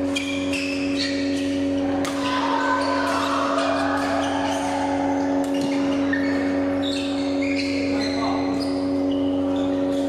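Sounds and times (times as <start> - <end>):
shoe squeaks on court: 0.0 - 1.8, 5.4 - 10.0
steady hum: 0.0 - 10.0
racket striking shuttlecock: 1.4 - 4.2.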